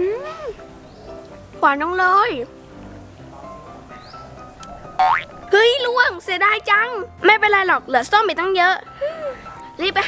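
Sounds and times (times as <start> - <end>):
soft background music: 0.0 - 10.0
cartoon boing sound effect: 5.0 - 5.3.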